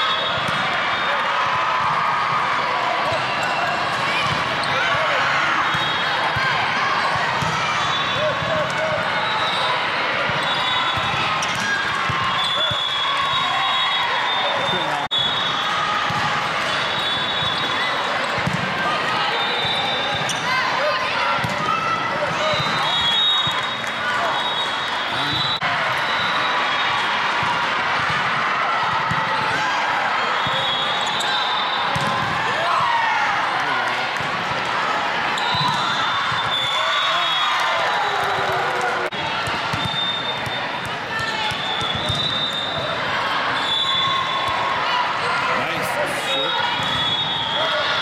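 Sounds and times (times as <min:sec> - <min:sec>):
volleyballs hit and bouncing: 0:16.0 - 0:19.2, 0:31.9 - 0:33.0
many overlapping voices: 0:38.3 - 0:48.0.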